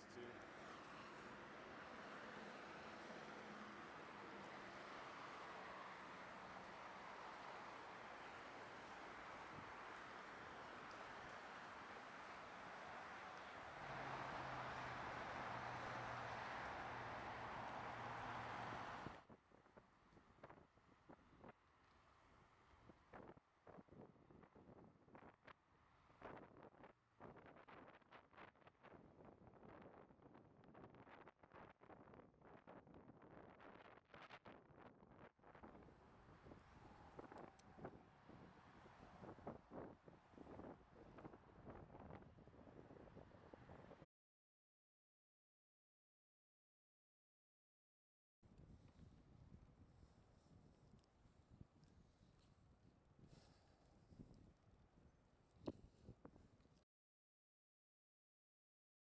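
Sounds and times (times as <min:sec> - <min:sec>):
freeway traffic: 0:00.0 - 0:23.1, 0:35.6 - 0:44.0
wind buffeting on microphone: 0:26.2 - 0:44.0.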